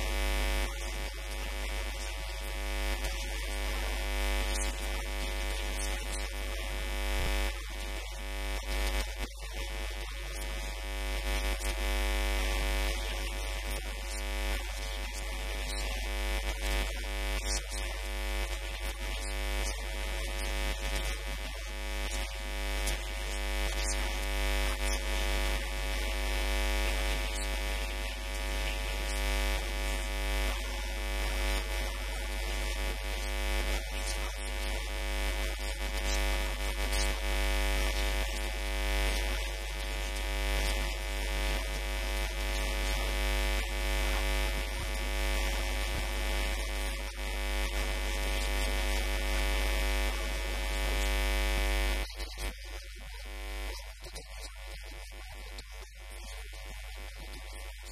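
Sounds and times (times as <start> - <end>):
electrical mains hum: 0.0 - 57.8.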